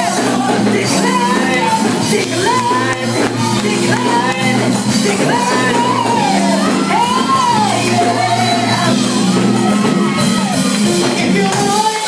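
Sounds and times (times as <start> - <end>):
band accompaniment: 0.0 - 12.0
people shouting: 2.4 - 10.7.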